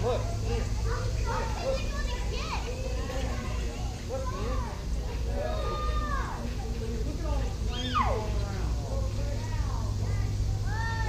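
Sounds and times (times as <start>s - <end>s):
people and children talking: 0.0s - 11.0s.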